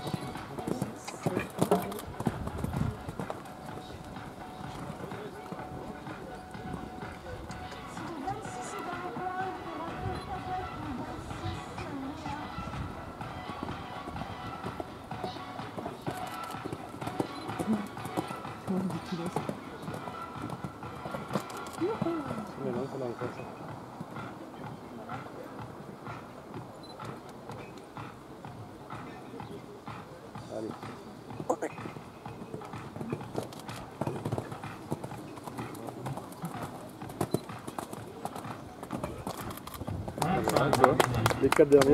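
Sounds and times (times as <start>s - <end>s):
background music: 0.0s - 41.9s
horse hoofbeats on sand: 0.0s - 41.9s.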